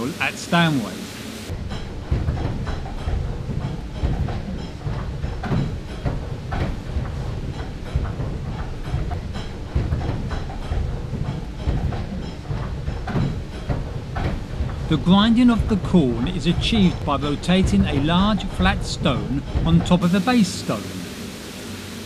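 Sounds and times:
mill gears clattering: 1.5 - 21.2.

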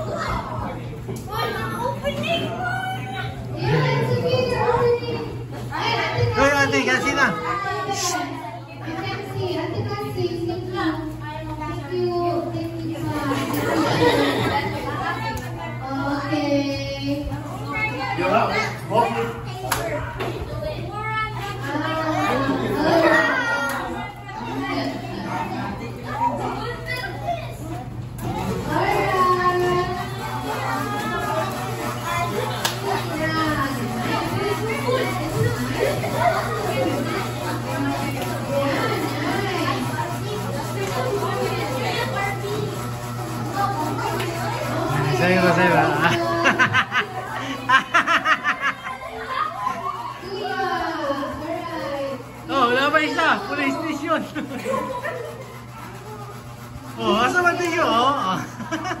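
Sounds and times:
children talking and calling out: 0.0 - 59.0.

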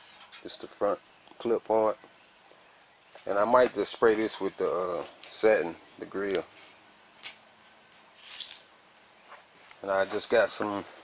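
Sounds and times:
hissy rustle: 4.1 - 11.0.

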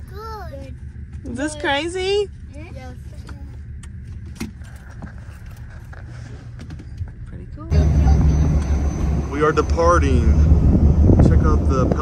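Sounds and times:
low rumble of ferry: 0.0 - 12.0.

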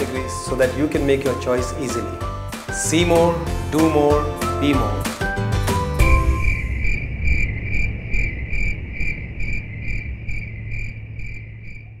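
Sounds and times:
cricket chirping: 6.0 - 12.0
low rumble: 6.0 - 12.0.

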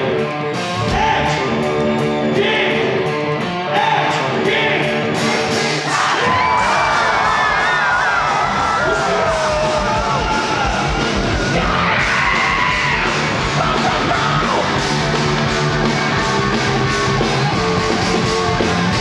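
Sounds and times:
electric guitar chords: 0.0 - 5.9, 7.9 - 19.0
drums: 0.0 - 19.0
punk rock band playing: 0.0 - 19.0.

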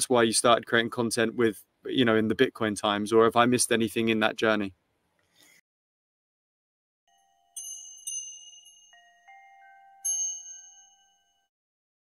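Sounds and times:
bell-like chime: 7.1 - 11.6.

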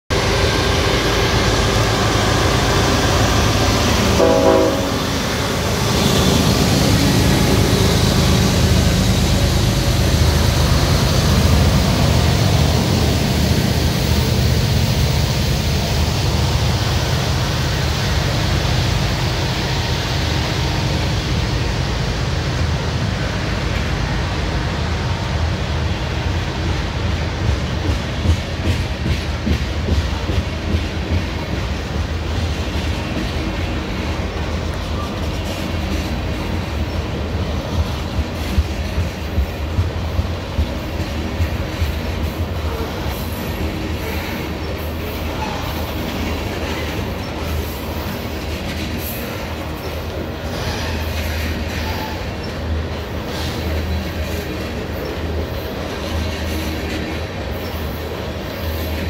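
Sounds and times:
diesel locomotive engine rumbling: 0.0 - 59.0
locomotive horn: 4.1 - 5.2.

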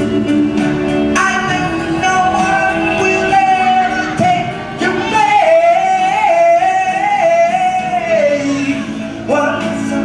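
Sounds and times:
man singing long high notes: 1.2 - 10.0.

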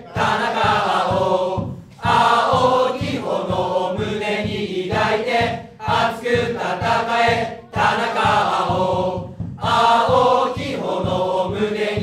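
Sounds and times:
crowd chanting in unison: 0.0 - 12.0
steady beat: 0.0 - 12.0.

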